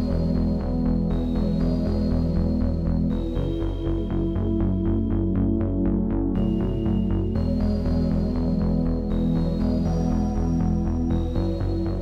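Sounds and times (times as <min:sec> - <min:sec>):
rapidly pulsing low bass: 0:00.0 - 0:12.0.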